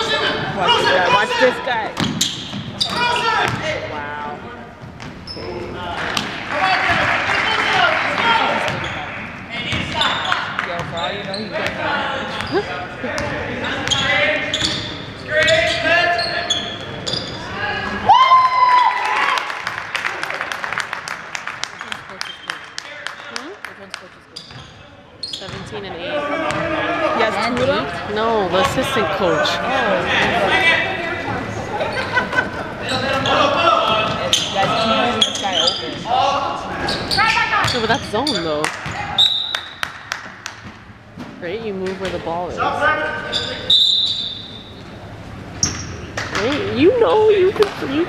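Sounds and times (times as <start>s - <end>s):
sneaker squeaks: 1.9s - 3.7s, 4.9s - 6.3s, 8.6s - 17.6s, 22.2s - 22.6s, 24.3s - 25.8s, 32.8s - 39.9s, 43.1s - 44.9s, 45.5s - 46.2s
basketball bouncing on wooden court: 25.5s - 25.7s.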